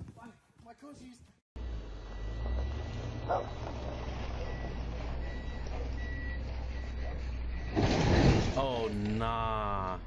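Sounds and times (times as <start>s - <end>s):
truck engine on gravel: 1.6s - 9.3s.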